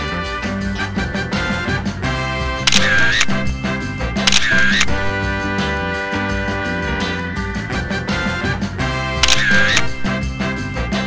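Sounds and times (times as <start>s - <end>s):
upbeat swing music: 0.0s - 11.0s
camera shutter clicks: 2.7s - 3.6s, 4.2s - 5.2s, 9.2s - 10.1s.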